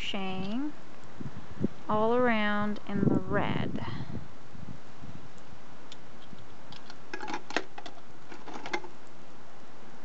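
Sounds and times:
steady background hiss: 0:00.0 - 0:10.0
plastic toys clattering in bucket: 0:07.1 - 0:08.9.

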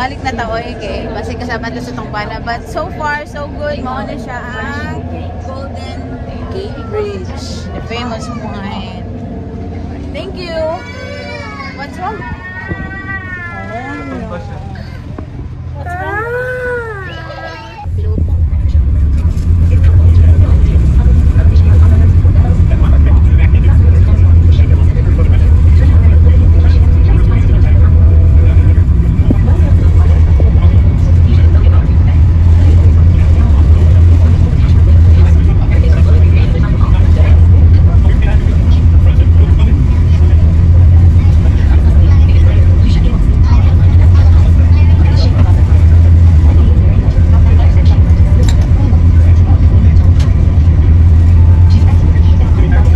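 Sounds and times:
boat engines low rumble: 0:00.0 - 0:52.9.

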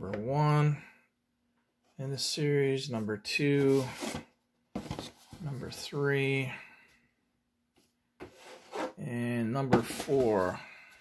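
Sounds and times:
cardboard box scraping: 0:08.3 - 0:09.0.

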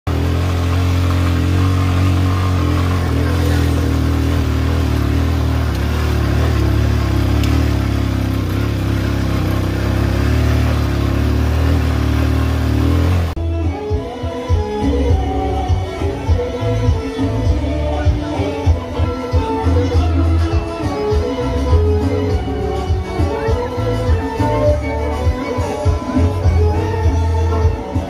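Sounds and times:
small motorcycle engine droning: 0:00.0 - 0:13.4
music: 0:00.1 - 0:28.0.

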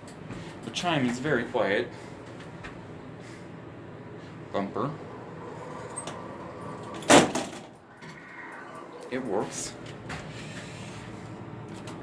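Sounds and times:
steady hum: 0:01.9 - 0:11.7
elevator doors sliding: 0:04.8 - 0:11.0
faint door operator whine: 0:05.0 - 0:11.1.

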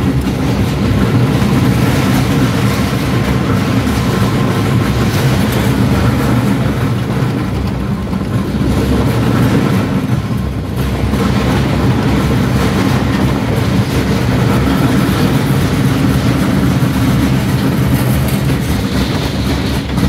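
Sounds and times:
roller coaster wheels rumbling on rails: 0:00.0 - 0:20.0.

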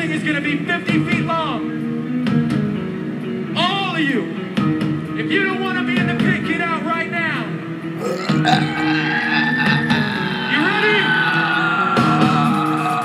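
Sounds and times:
people shouting: 0:08.0 - 0:10.2.

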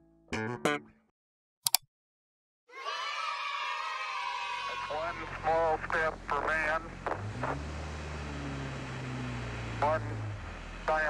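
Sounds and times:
man's voice: 0:04.8 - 0:07.6, 0:09.8 - 0:10.2
car engine idling: 0:04.8 - 0:11.0.

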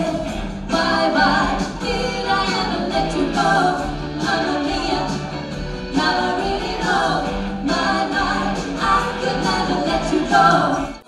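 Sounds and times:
keyboard and electric guitar: 0:00.0 - 0:11.0
women singing in harmony: 0:00.0 - 0:11.0.

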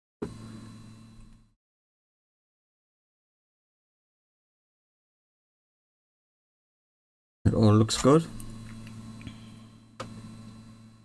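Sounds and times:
low steady hum with hiss: 0:07.5 - 0:11.0.

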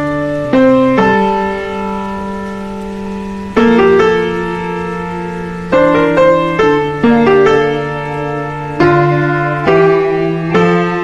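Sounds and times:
piano chord ringing: 0:00.0 - 0:11.0.

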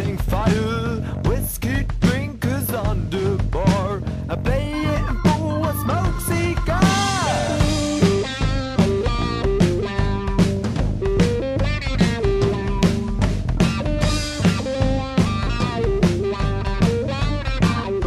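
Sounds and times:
bass guitar: 0:00.0 - 0:18.0
drum kit beating: 0:00.0 - 0:18.0
electric guitar riffing: 0:04.5 - 0:18.0.

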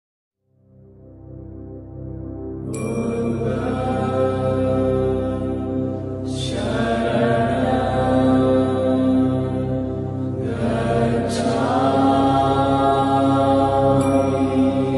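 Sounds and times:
held drone: 0:02.6 - 0:14.9
chanted mantra: 0:02.7 - 0:14.9.

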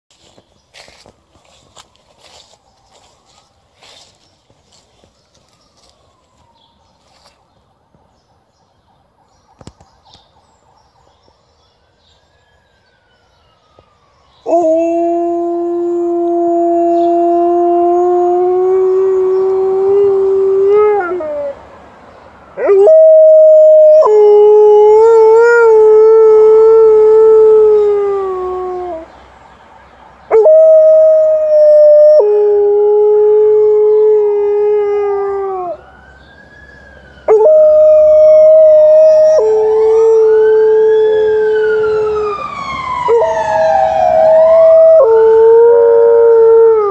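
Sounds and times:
faint ambulance siren: 0:00.1 - 0:46.9.

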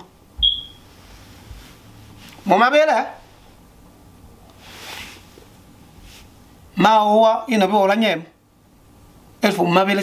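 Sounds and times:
high-pitched electronic beep: 0:00.4 - 0:00.8.

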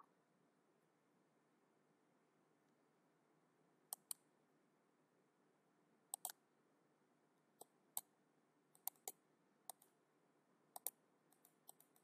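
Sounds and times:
computer mouse clicking: 0:03.9 - 0:04.2, 0:06.1 - 0:06.4, 0:08.7 - 0:10.0, 0:10.7 - 0:12.0.

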